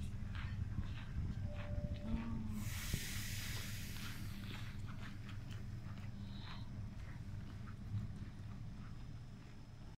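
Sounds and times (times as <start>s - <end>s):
low hum of electric trains: 0.0s - 9.9s.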